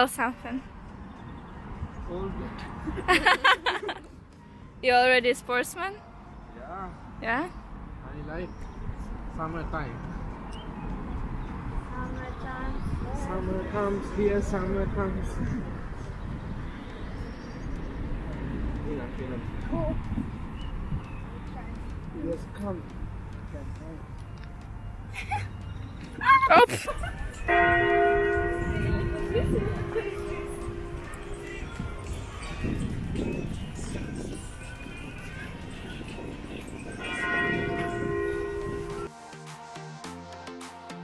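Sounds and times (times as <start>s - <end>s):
wind on microphone: 10.0s - 18.8s, 19.4s - 21.6s, 27.3s - 39.1s
steady tones: 26.9s - 39.1s.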